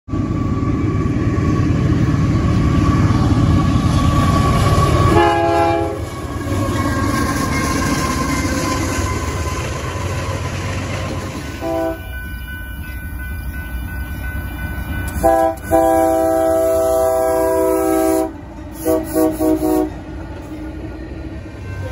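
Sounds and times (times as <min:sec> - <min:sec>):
freight locomotive passing: 0:00.1 - 0:21.9
chorded train horn blast: 0:05.0 - 0:06.1, 0:11.5 - 0:12.2, 0:15.2 - 0:20.0
second train horn: 0:05.1 - 0:06.1, 0:11.6 - 0:12.1, 0:15.2 - 0:20.0
crossing bell ringing: 0:05.2 - 0:19.1, 0:19.8 - 0:21.9.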